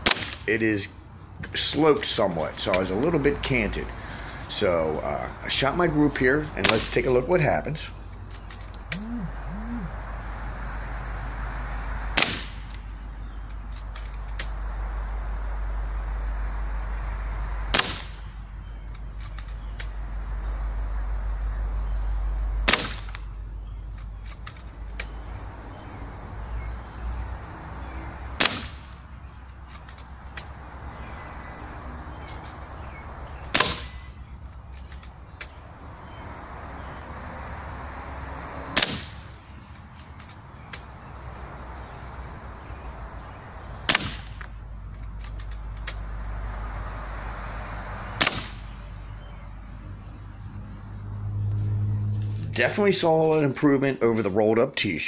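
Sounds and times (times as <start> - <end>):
air rifle shots: 0.0 - 0.5, 6.6 - 7.2, 12.2 - 12.8, 17.7 - 18.4, 22.7 - 23.3, 28.4 - 29.0, 33.5 - 34.0, 38.8 - 39.3, 43.8 - 44.5, 48.2 - 48.8.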